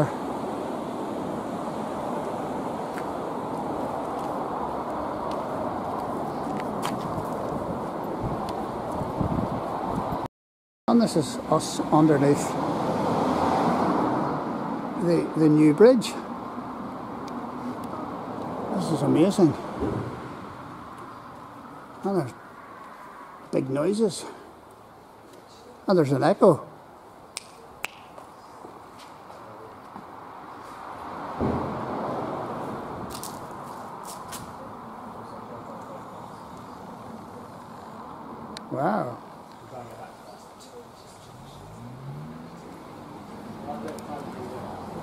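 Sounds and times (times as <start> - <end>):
traffic rumble on bridge overhead: 0.0 - 10.3, 10.9 - 45.0.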